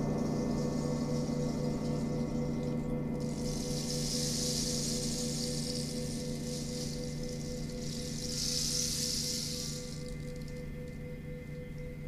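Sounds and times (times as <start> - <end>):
gong and singing bowls ringing: 0.0 - 8.6
rainstick pebbles cascading: 3.2 - 10.7.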